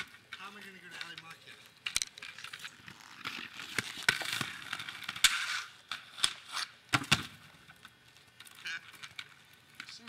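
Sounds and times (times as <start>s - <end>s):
inline skates scraping on concrete: 0.0s - 10.0s
inline skates knocking on concrete: 2.0s - 7.5s.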